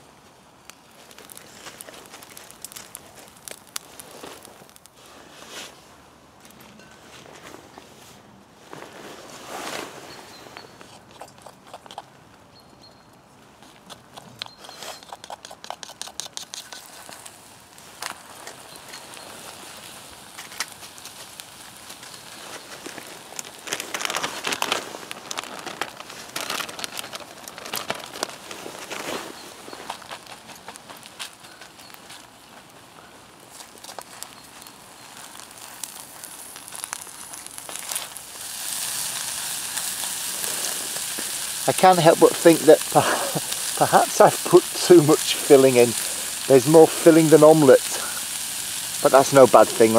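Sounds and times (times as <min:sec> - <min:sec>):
wood fire crackling: 0:00.0 - 0:12.4, 0:13.4 - 0:49.9
sharp pops of fire: 0:00.6 - 0:05.1, 0:14.0 - 0:32.3, 0:33.5 - 0:49.9
frying sizzle: 0:15.7 - 0:28.2, 0:34.0 - 0:49.9
plastic bag rustling: 0:16.8 - 0:32.7.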